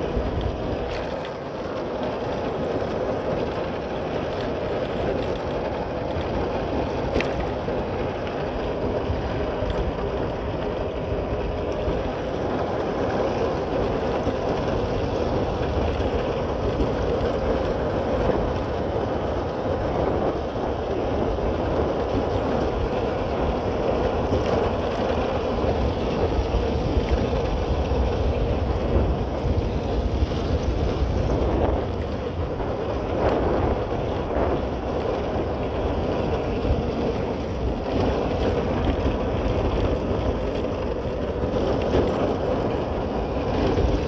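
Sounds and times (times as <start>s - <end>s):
wind rushing over microphone: 0.0s - 44.0s.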